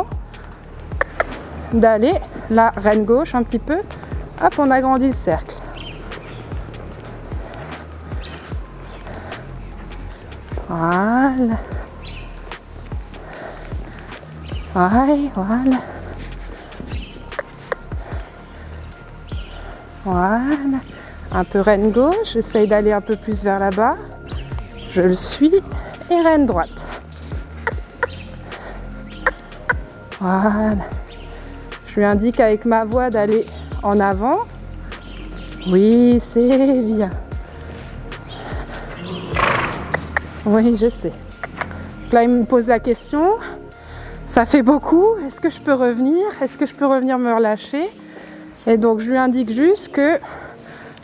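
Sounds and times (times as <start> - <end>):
background music: 0.0 - 51.0
horse hooves thudding on sand: 0.2 - 31.2, 35.0 - 42.4
horse snorting: 15.1 - 18.2, 27.6 - 29.9, 37.6 - 42.0.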